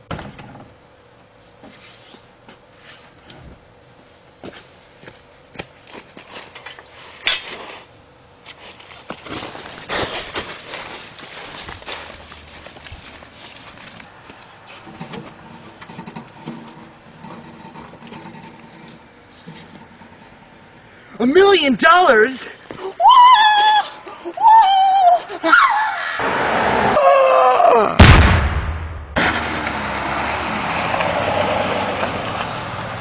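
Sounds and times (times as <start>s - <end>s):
footsteps outdoors: 4.1s - 15.8s, 22.0s - 24.5s
rustling: 5.9s - 21.0s.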